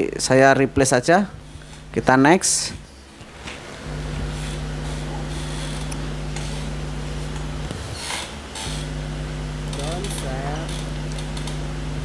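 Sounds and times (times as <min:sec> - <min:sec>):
low electrical hum: 0:00.0 - 0:12.0.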